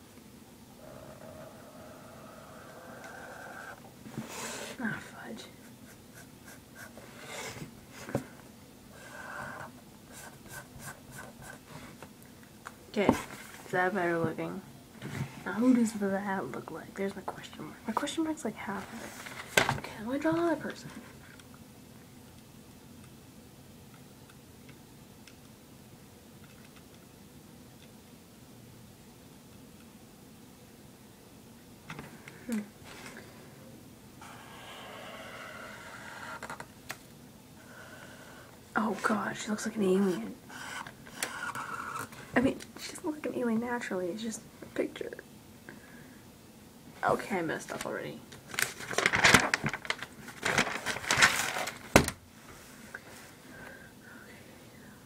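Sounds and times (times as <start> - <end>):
marker scratching on paper: 5.6 - 7.4, 10.1 - 11.7, 40.0 - 42.1.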